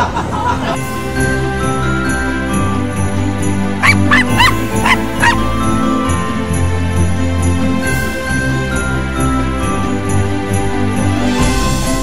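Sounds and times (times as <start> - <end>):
festive holiday song with sleigh bells: 0.8 - 12.0
small dog yapping: 3.8 - 5.4.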